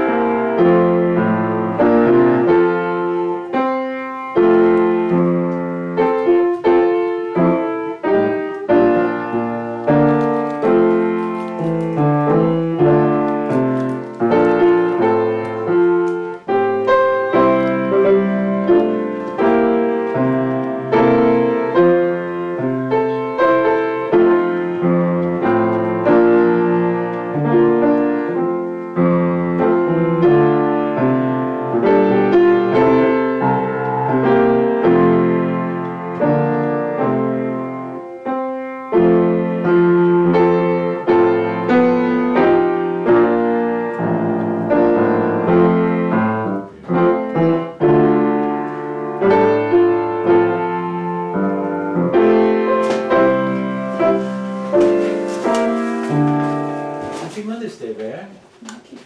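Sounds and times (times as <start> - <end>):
solo piano: 0.0 - 59.0.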